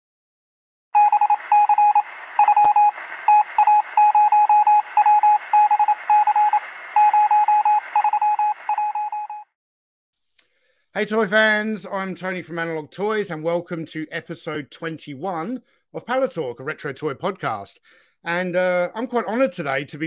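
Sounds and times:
morse code beeps: 0:01.0 - 0:09.5
radio static hiss: 0:01.2 - 0:08.9.

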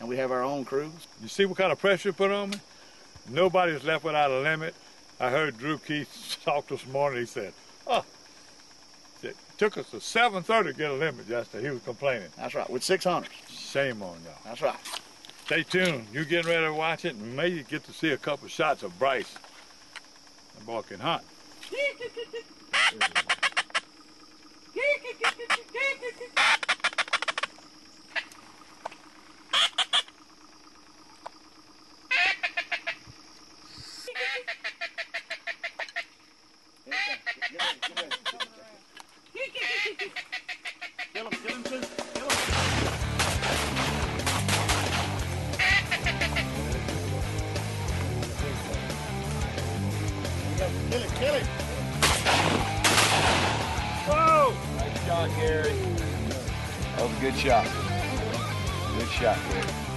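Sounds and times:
ducks quacking: 0:22.7 - 0:23.8, 0:29.5 - 0:30.1, 0:32.1 - 0:33.0, 0:36.8 - 0:38.6, 0:39.6 - 0:41.9, 0:45.5 - 0:46.8
music with steady bass: 0:41.4 - 0:52.8, 0:53.5 - 0:59.9.

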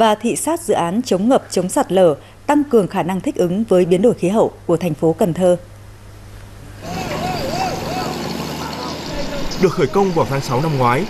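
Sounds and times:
construction machinery engine din: 0:06.6 - 0:11.0
wavering whine: 0:06.6 - 0:11.0.

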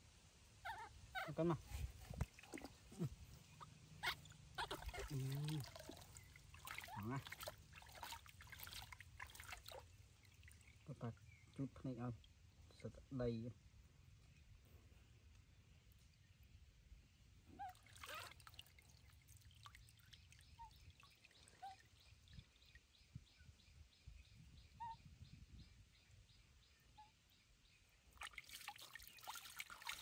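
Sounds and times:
water trickling and splashing: 0:01.4 - 0:12.9, 0:17.6 - 0:23.2, 0:28.1 - 0:30.0.

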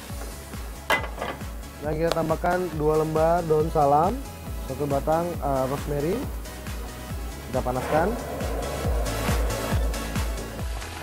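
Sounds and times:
quiet background music: 0:00.0 - 0:11.0
metal pot clanking on stove: 0:00.9 - 0:01.5.

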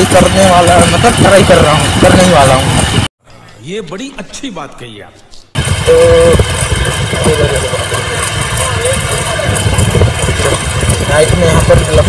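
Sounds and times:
motorcycle engine running: 0:00.0 - 0:03.1, 0:05.6 - 0:12.0
wind rumble on microphone: 0:00.0 - 0:03.1, 0:05.6 - 0:12.0
steady tone: 0:05.6 - 0:12.0.

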